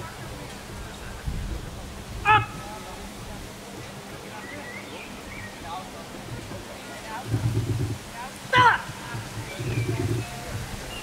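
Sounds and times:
outdoor background noise: 0.0 - 11.0
person shouting a command: 8.5 - 8.9.

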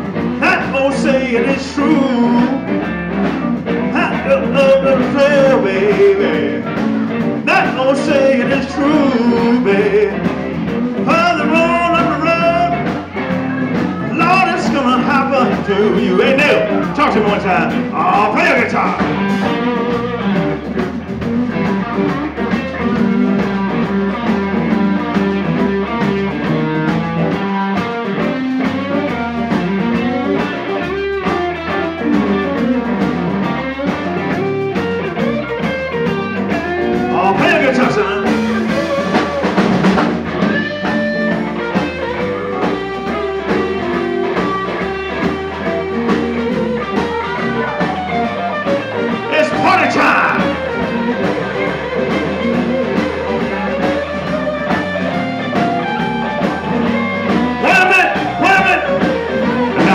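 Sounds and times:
electric guitar solo bending notes: 0.0 - 59.9
live blues band playing: 0.0 - 59.9.

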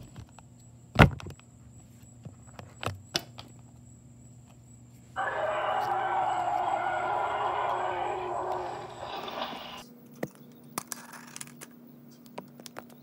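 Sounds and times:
person roaring like dinosaur: 5.2 - 9.8.

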